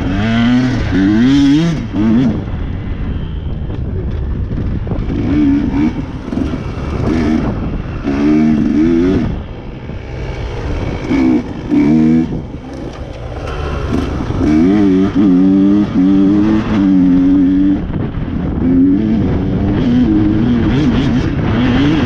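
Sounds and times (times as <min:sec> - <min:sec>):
dirt bike engine revving: 0:00.0 - 0:02.4, 0:05.0 - 0:22.0.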